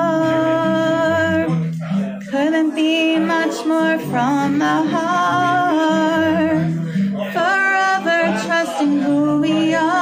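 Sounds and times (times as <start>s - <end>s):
guitar backing track: 0.0s - 10.0s
woman singing: 0.0s - 10.0s.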